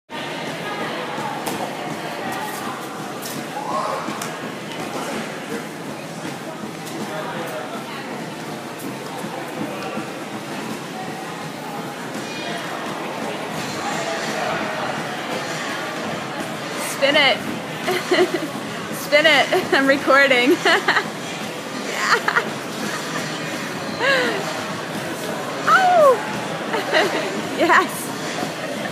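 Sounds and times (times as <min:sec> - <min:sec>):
indistinct crowd chatter: 0:00.1 - 0:28.9.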